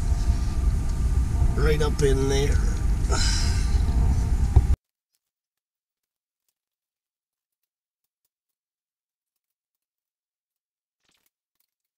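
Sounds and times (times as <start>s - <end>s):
steady low rumble: 0.0s - 4.8s.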